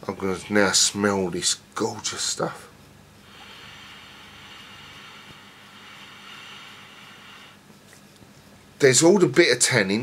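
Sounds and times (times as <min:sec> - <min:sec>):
man sniffing through nose: 0:03.2 - 0:07.8.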